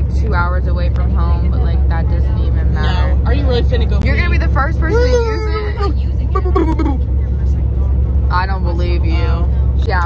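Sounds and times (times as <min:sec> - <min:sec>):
bus engine drone: 0:00.0 - 0:10.0
road noise inside cabin: 0:00.0 - 0:10.0.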